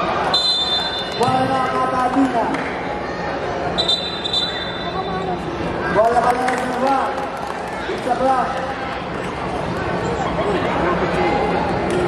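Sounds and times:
court noise: 0.0 - 12.0
crowd chatter: 0.0 - 12.0
referee's whistle: 0.3 - 1.3, 3.8 - 5.0.

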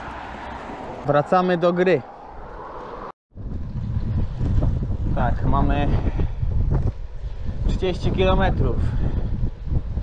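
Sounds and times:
wind buffeting microphone: 2.3 - 10.0.

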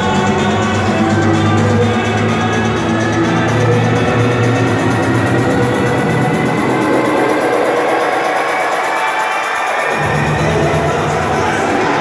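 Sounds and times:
electronic dance music: 0.0 - 12.0.

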